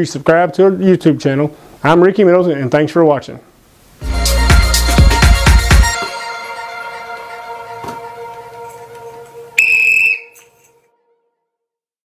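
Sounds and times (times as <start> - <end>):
background music: 4.0 - 11.0
whistle blast: 9.6 - 10.8.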